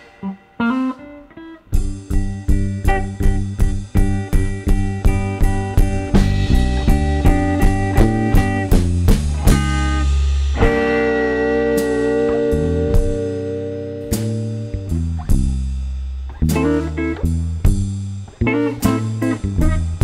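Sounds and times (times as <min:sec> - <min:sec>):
bass guitar: 0:00.0 - 0:20.0
electric guitar: 0:00.0 - 0:20.0.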